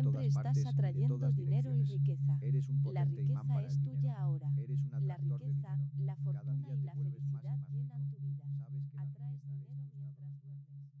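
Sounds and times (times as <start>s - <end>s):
faint layered voices: 0.0s - 9.8s
low pulsing tone: 0.0s - 11.0s.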